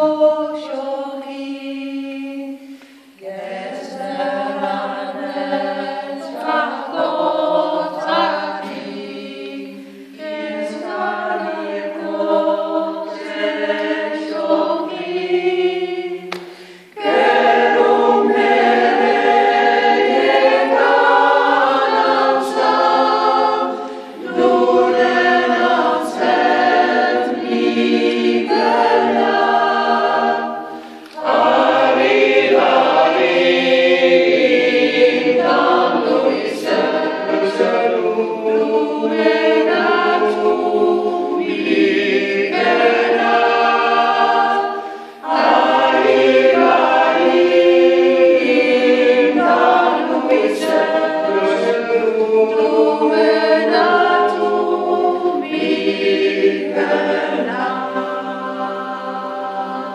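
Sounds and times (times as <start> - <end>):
group singing a cappella: 0.0 - 59.9.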